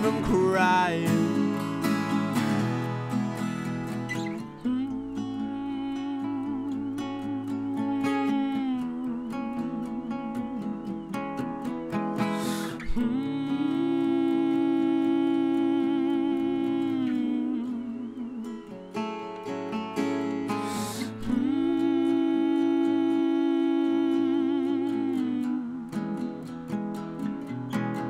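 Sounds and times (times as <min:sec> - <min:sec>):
person singing wordlessly: 0:00.0 - 0:01.8, 0:04.2 - 0:11.3, 0:12.2 - 0:19.0, 0:20.5 - 0:26.5
acoustic guitars playing: 0:00.0 - 0:28.0.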